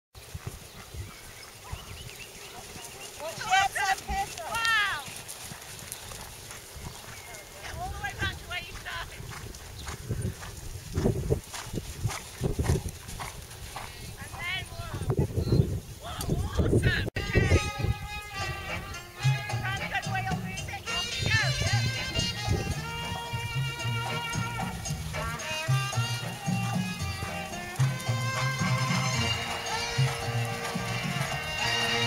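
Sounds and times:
wind buffeting microphone: 0.2 - 18.9, 19.7 - 23.6.

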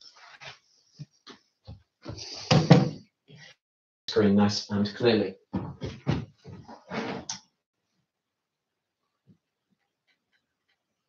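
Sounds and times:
knocks and bumps: 5.5 - 7.2.

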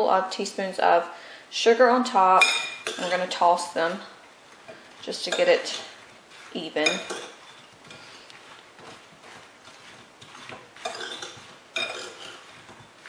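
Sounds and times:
metal spoon scraping ceramic bowl: 5.0 - 8.6, 9.3 - 12.9.

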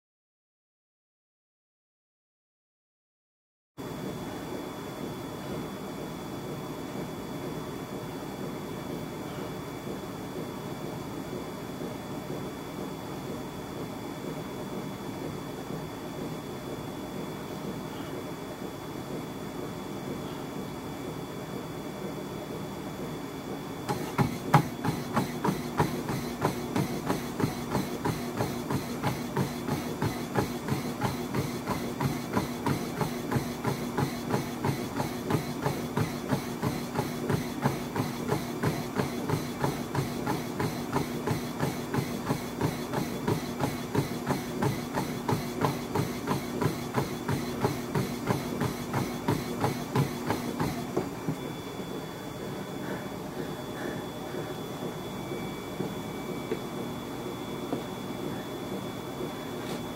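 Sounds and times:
treadmill motor and belt hum: 3.8 - 59.9
feet pounding treadmill deck: 6.5 - 59.9.

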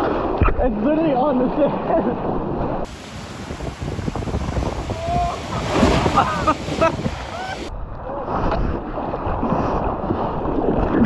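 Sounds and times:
waves crashing onto beach: 1.8 - 9.4
wind buffeting microphone: 2.1 - 11.0.

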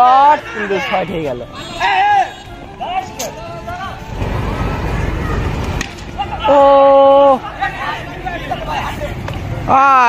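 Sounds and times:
players calling out: 0.0 - 10.0.

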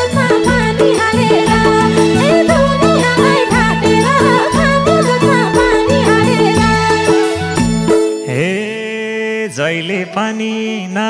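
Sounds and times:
man singing folk song: 8.2 - 11.0.

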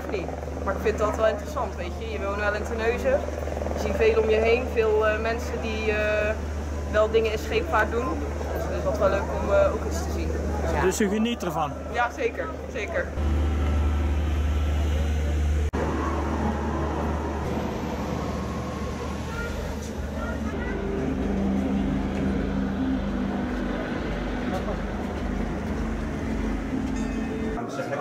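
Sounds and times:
faint voices: 0.0 - 13.2, 14.6 - 28.0
low rumble: 13.1 - 27.6.

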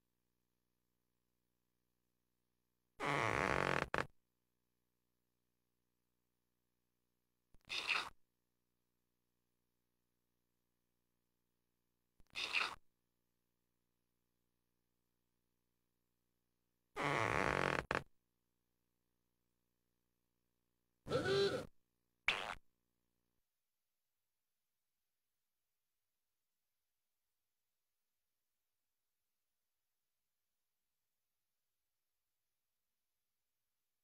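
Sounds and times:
cartoon low rough blurt: 21.1 - 21.7.

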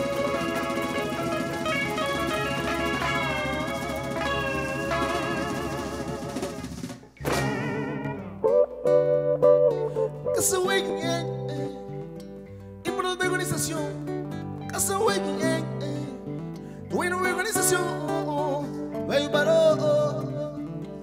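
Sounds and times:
music with bass and sharp beats: 0.0 - 8.7
live band with guitars and drum: 0.0 - 21.0.

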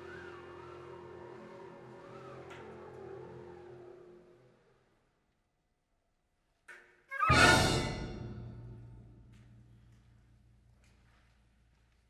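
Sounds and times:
wind band playing softly: 7.1 - 8.8.

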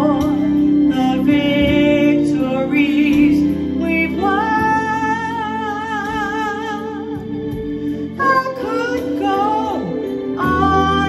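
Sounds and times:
woman singing: 0.0 - 7.2, 8.2 - 11.0
electric organ chords: 0.0 - 11.0.

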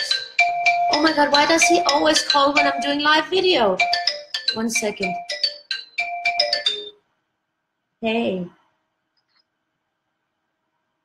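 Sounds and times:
chime-like phone ringtone: 0.0 - 7.0.

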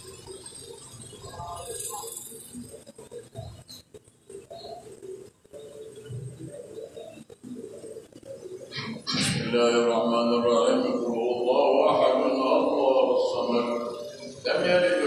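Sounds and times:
man chanting loudly: 9.0 - 15.0.

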